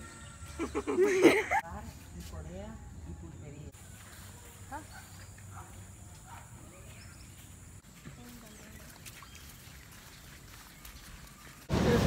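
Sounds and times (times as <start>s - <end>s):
bird chirps: 6.7s - 11.6s.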